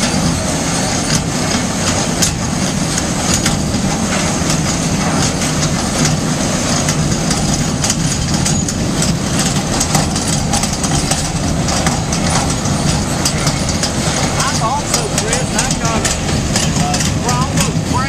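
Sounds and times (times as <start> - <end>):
sharp ticks and rattles: 0.9 - 18.0.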